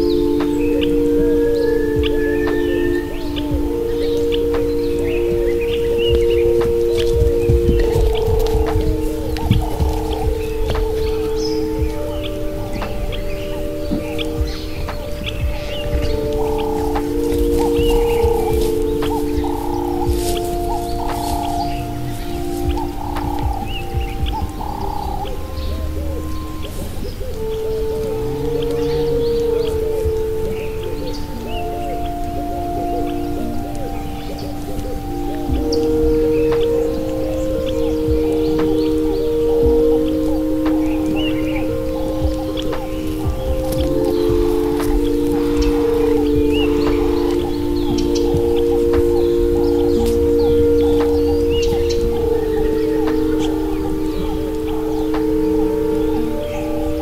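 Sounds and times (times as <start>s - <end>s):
ambient meditation music: 0.0s - 57.0s
bird chirps: 0.0s - 57.0s.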